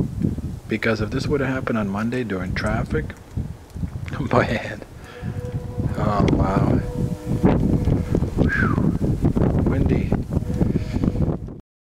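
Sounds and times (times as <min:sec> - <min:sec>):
wind buffeting microphone: 0:00.0 - 0:11.6.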